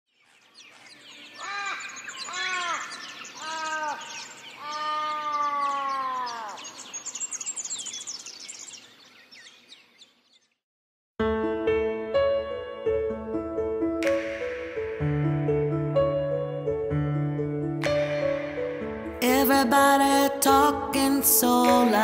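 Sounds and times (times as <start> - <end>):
small birds chirping: 0.1 - 10.6
crow cawing: 1.3 - 6.8.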